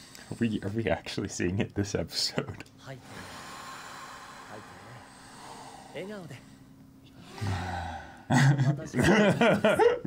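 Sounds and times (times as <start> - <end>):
long breath out: 3.0 - 6.6, 7.2 - 8.3.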